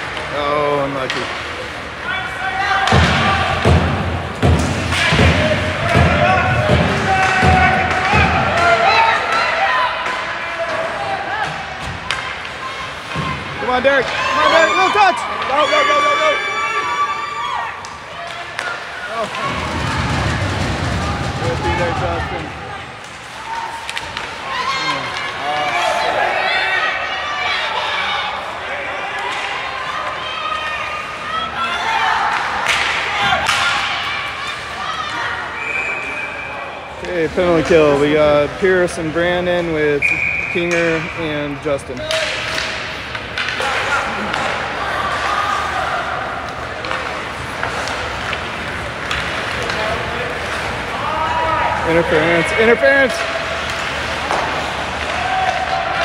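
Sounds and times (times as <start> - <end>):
pucks and players hitting boards: 0.0 - 26.4, 30.8 - 56.0
spectators' voices and shouts: 0.0 - 56.0.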